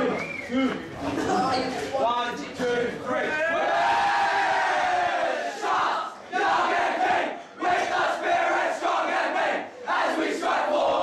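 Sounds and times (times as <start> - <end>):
team singing and shouting: 3.1 - 11.0.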